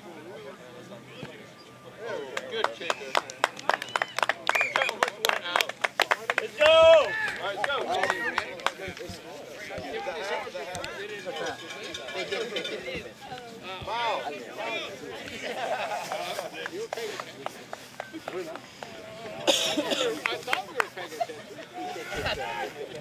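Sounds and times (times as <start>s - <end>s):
voices chattering: 0.0s - 23.0s
people clapping: 2.3s - 9.2s, 15.2s - 21.0s.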